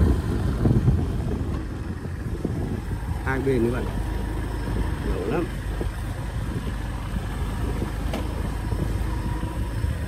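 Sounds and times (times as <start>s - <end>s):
engine low rumble: 0.0s - 10.0s.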